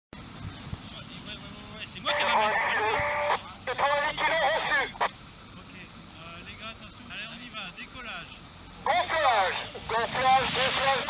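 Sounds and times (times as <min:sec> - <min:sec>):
voice over two-way radio: 0:01.9 - 0:05.1, 0:08.8 - 0:11.0.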